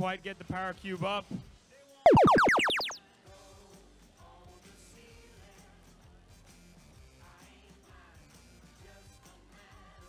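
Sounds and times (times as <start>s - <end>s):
falling electronic pitch sweeps: 2.1s - 3.0s.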